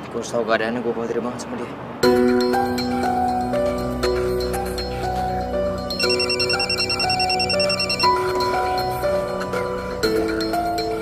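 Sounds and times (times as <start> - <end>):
soft background music: 2.0 - 11.0
mobile phone ringtone trill: 5.9 - 8.6.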